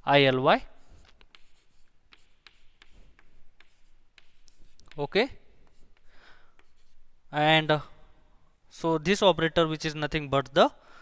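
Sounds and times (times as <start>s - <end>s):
chalk tapping and scratching: 0.6s - 7.2s.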